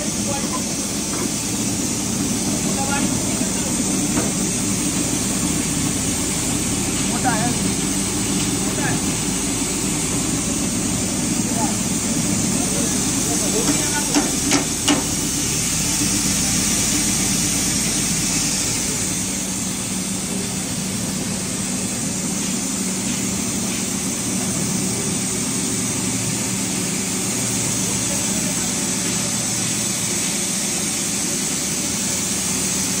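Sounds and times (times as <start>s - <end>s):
grain machine with shaking sieve: 0.0s - 33.0s.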